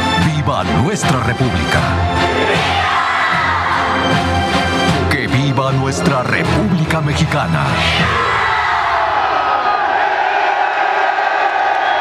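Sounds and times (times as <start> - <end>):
large crowd cheering and shouting: 2.0 - 4.8, 7.6 - 12.0.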